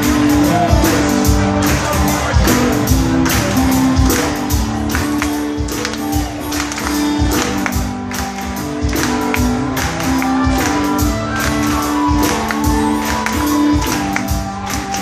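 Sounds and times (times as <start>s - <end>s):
guitars: 0.0s - 15.0s
steady drum beat: 0.0s - 15.0s.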